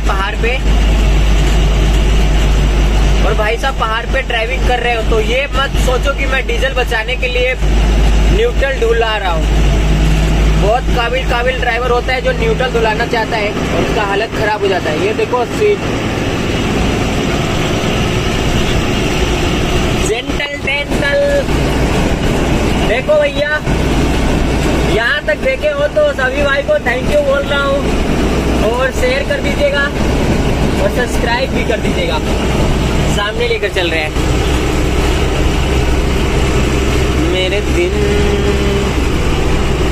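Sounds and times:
man talking: 0.0s - 0.7s, 3.1s - 7.6s, 8.2s - 9.6s, 10.6s - 16.0s, 20.0s - 21.6s, 22.8s - 23.7s, 24.8s - 30.0s, 30.7s - 34.2s, 37.1s - 39.1s
road and wind noise: 0.0s - 39.9s
truck diesel engine droning: 0.0s - 39.9s.

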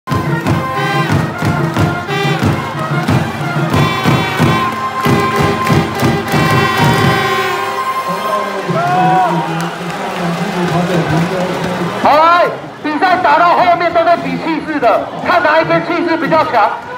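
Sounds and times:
drum beating fast rhythm: 0.1s - 9.1s
crowd cheering: 0.1s - 16.9s
held high note: 2.1s - 9.2s.

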